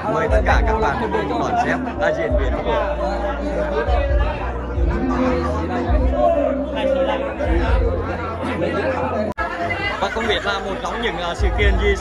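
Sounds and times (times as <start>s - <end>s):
overlapping crowd chatter: 0.0s - 12.0s.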